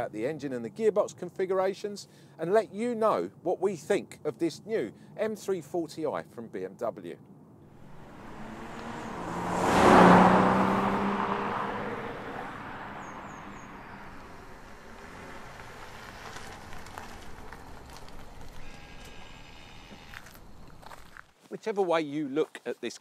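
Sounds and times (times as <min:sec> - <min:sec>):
car engine and tyres driving past: 0:07.7 - 0:19.4.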